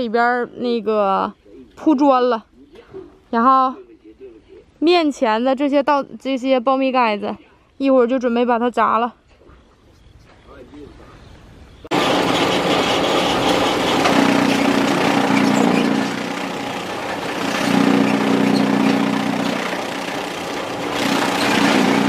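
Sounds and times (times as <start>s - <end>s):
chaff cutter clattering: 11.9s - 22.0s
deep machine hum: 11.9s - 22.0s.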